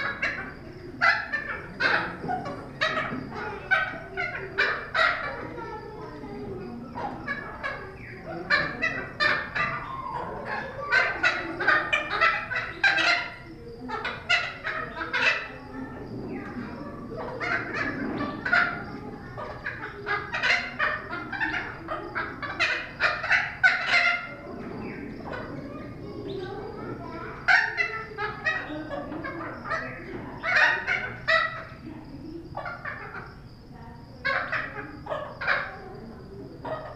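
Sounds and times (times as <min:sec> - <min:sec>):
parrot calling: 0:00.0 - 0:36.9.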